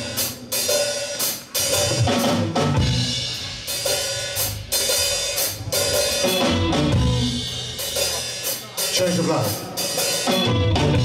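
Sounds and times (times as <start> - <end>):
blues-rock band playing: 0.0 - 11.0.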